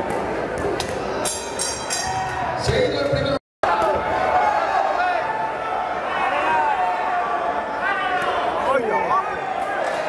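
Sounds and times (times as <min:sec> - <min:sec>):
crowd voices and shouting: 0:00.0 - 0:10.0.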